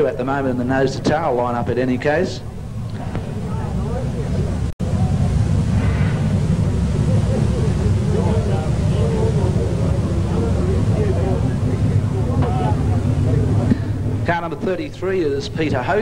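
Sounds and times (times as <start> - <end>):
race car engines rumbling: 0.0 - 16.0.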